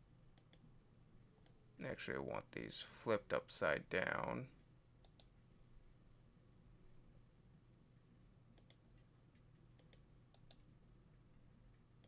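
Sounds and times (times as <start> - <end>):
computer mouse clicks: 0.4 - 0.7, 1.4 - 1.9, 5.0 - 5.4, 8.6 - 10.7.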